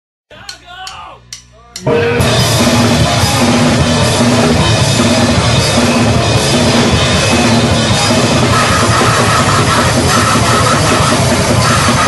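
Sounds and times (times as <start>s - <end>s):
drumsticks clicking: 0.4s - 1.9s
band with drums and distorted guitars: 0.4s - 12.0s.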